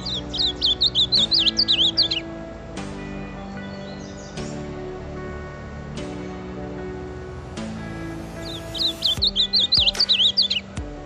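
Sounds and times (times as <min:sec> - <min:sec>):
bird singing whistles: 0:00.0 - 0:02.3, 0:08.4 - 0:10.7
background music: 0:00.0 - 0:11.0.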